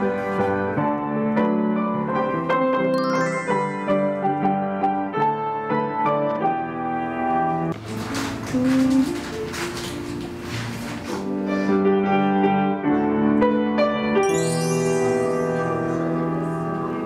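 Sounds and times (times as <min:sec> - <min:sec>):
grand piano playing: 0:00.0 - 0:17.0.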